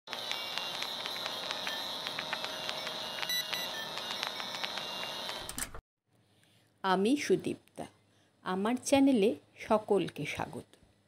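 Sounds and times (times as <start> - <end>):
film projector whirring: 0.1 - 5.7.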